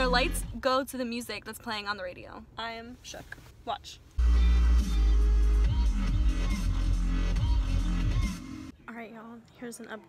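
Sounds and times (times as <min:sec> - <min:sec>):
electronic dance music: 0:04.2 - 0:08.7.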